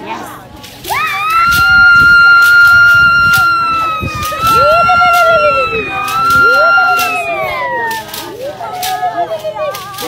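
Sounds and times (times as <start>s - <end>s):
sharp claps: 1.3s - 9.0s.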